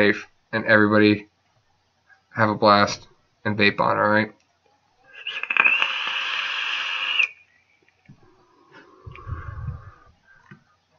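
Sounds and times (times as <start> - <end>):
vape coil hissing and sizzling: 5.1 - 7.4
vape crackles: 5.1 - 7.4.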